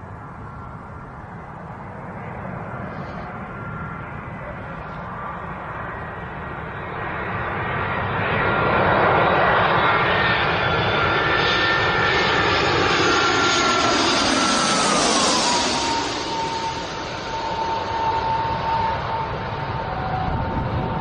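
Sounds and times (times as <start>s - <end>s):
airliner jet engines roaring: 0.0s - 21.0s
high engine whine: 0.0s - 21.0s.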